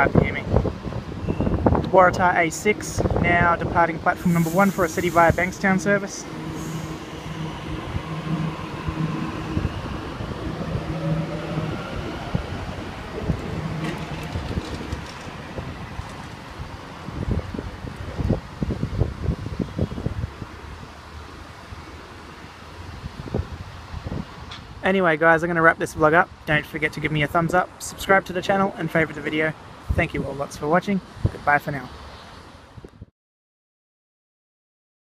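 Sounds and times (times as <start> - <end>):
wind buffeting microphone: 0.0 - 21.8, 22.8 - 24.8
steady hum: 3.8 - 15.6
electric train motors whining: 4.2 - 16.6.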